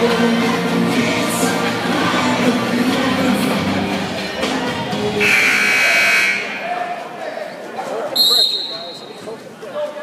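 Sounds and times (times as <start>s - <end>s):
crowd chatter: 0.0s - 10.0s
scoreboard horn buzzing: 5.2s - 6.6s.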